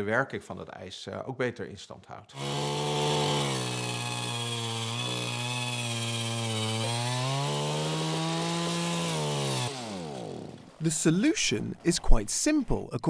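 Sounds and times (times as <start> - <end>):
power ice auger boring: 2.3 - 10.9.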